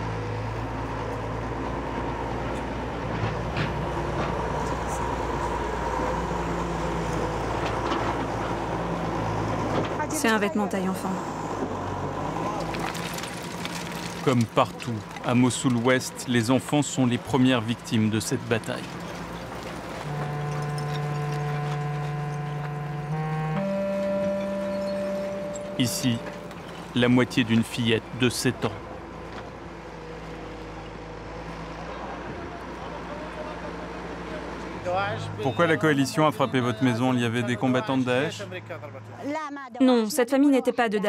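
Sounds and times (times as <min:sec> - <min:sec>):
excavator diesel engine running: 0:00.0 - 0:38.8
low sustained music notes: 0:19.3 - 0:28.4.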